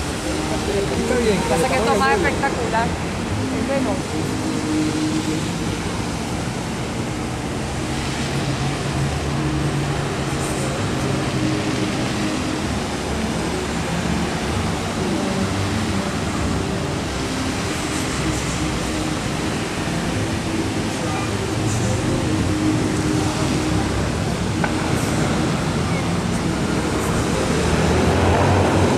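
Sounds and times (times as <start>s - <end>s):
fountain water jets splashing: 0.0s - 28.9s
low hum of traffic: 0.0s - 28.9s.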